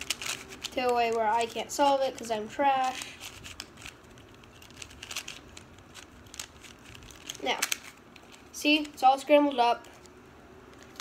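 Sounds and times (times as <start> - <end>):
puzzle cube clicking as turned: 0.0 - 9.0.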